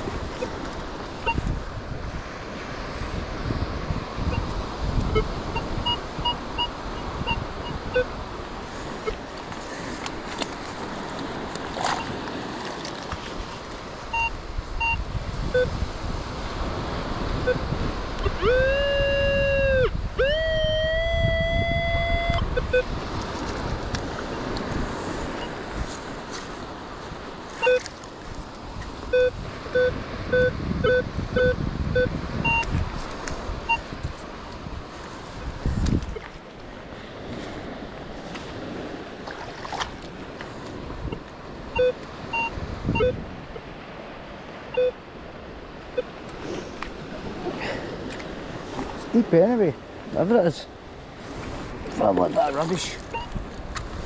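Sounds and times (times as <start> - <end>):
surf: 0.0 - 54.0
wind: 0.0 - 54.0
metal detector short beeps: 1.2 - 1.4, 5.1 - 8.1, 14.1 - 15.7, 17.4 - 17.6, 18.2 - 22.9, 27.6 - 27.9, 29.1 - 32.7, 41.8 - 43.2, 44.7 - 45.0, 53.1 - 53.3
metal detector target tones: 18.2 - 22.9, 27.6 - 27.9.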